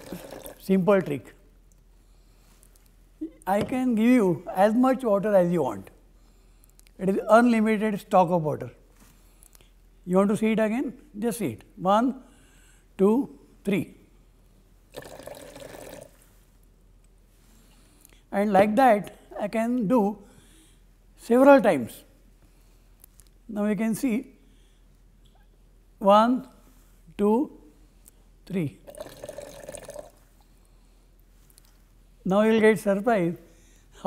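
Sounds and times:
water pouring into plastic mug: 0:00.0 - 0:00.7, 0:14.9 - 0:16.2, 0:28.9 - 0:30.2.

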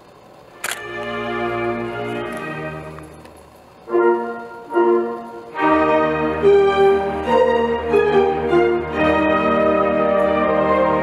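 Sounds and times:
orchestra with piano playing: 0:00.6 - 0:03.2, 0:03.9 - 0:11.0
loud orchestral chord: 0:00.8 - 0:03.2, 0:03.8 - 0:11.0.

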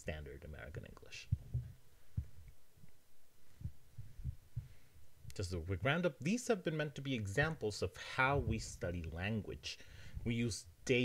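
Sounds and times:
soft low thumps: 0:01.2 - 0:05.5, 0:08.3 - 0:08.9.

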